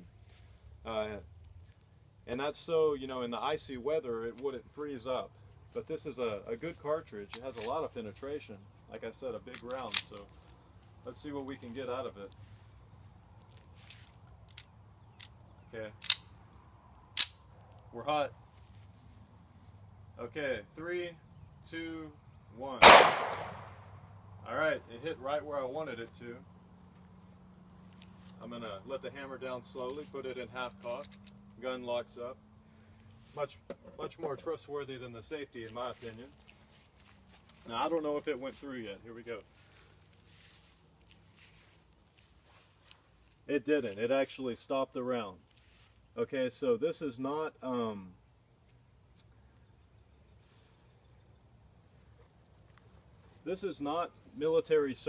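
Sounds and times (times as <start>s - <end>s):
pistol metallic clicks: 9.5s - 10.3s, 14.5s - 16.3s, 17.2s - 17.4s, 22.8s - 23.8s
faint fabric rustles: 9.7s - 14.5s, 17.6s - 20.0s, 35.6s - 44.3s, 45.4s - 46.2s, 50.3s - 53.5s.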